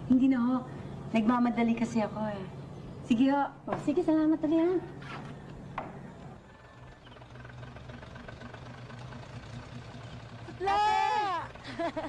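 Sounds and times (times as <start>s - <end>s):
low mechanical hum with pulse: 0.0s - 12.0s.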